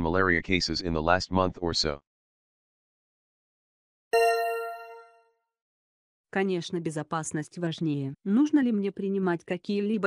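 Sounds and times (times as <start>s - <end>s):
bell-like chime: 4.2s - 5.2s.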